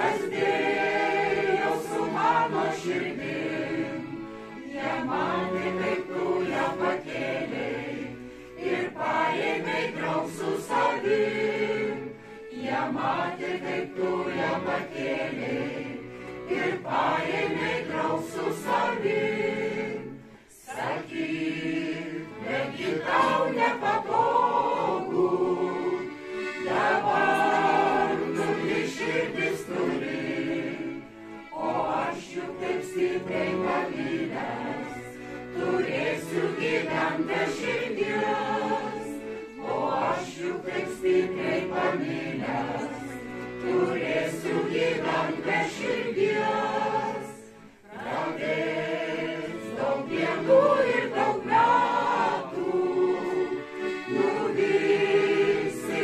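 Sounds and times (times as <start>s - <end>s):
mixed choir singing folk song: 0.0s - 56.0s
piano accordion: 0.0s - 56.0s.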